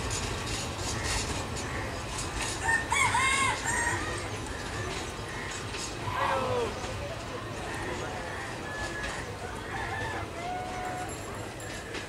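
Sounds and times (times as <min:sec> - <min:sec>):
rooster crowing: 0:02.6 - 0:04.1, 0:09.6 - 0:11.1.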